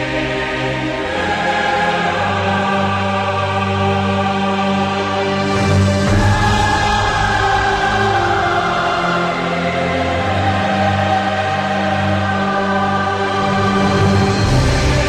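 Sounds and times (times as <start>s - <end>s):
choir singing held chords: 0.0s - 15.0s.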